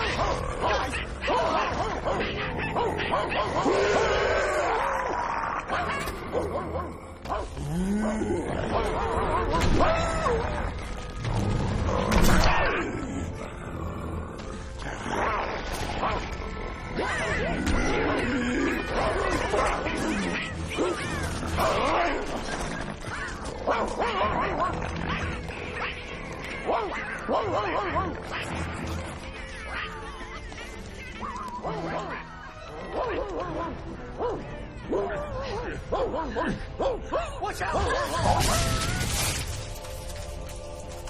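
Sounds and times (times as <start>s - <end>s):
film music: 0.0s - 41.0s.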